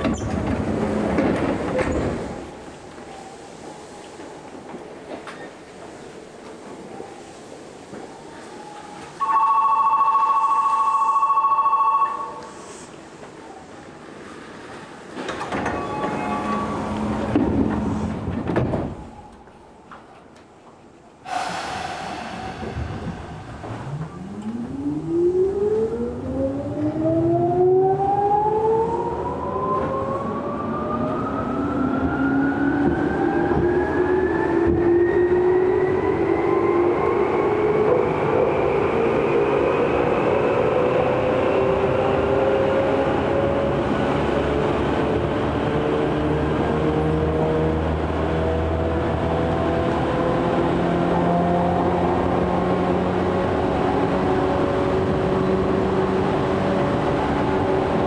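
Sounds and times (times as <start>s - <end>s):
rumbling wheel and rail noise: 0.0s - 58.0s.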